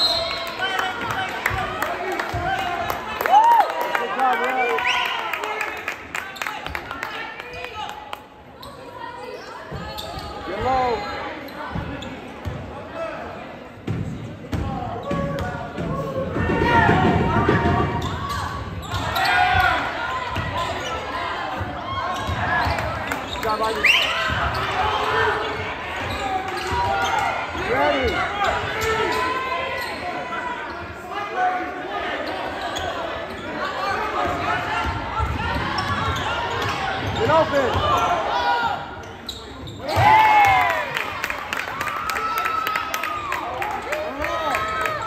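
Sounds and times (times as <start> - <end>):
sneakers squeaking: 8.6 - 12.7, 13.9 - 16.0, 17.6 - 31.1, 32.0 - 40.3.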